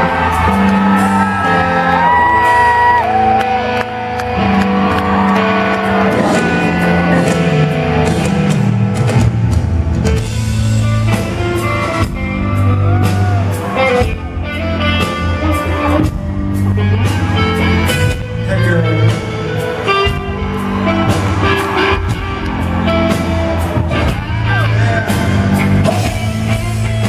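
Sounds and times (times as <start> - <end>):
electric guitar: 0.0 - 27.0
live rock band: 0.0 - 27.0.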